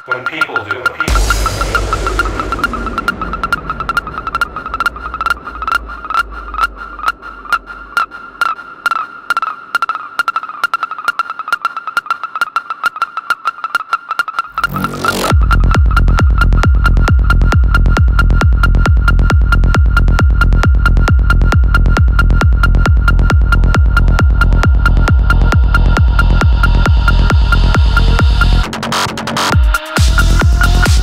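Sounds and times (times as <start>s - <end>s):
kick drum and bass beat: 1.1s - 8.1s, 14.5s - 28.7s, 29.4s - 31.0s
low bass drone: 1.1s - 9.4s, 14.5s - 28.7s
rising noise sweep: 1.1s - 9.8s, 14.5s - 17.1s
pulsing high synth tone: 14.5s - 15.7s.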